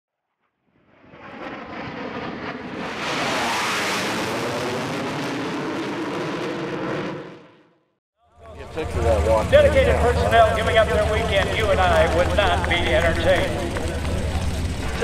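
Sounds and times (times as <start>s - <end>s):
jet aircraft engine: 0.8s - 7.7s, 8.4s - 15.0s.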